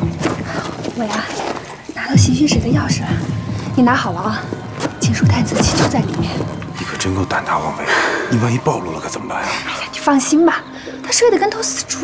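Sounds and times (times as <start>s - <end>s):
woman speaking: 1.0s - 1.4s, 2.0s - 4.5s, 9.9s - 12.0s.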